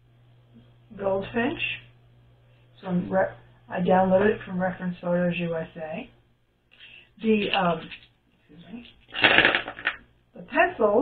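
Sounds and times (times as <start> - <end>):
pencils clattering on a table: 8.8 - 10.0.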